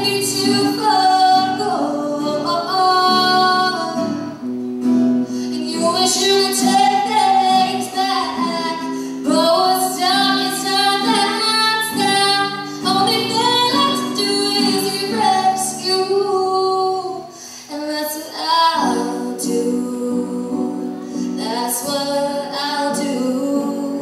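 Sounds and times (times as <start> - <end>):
woman singing: 0.0 - 4.4, 5.4 - 24.0
guitar accompaniment: 0.0 - 24.0.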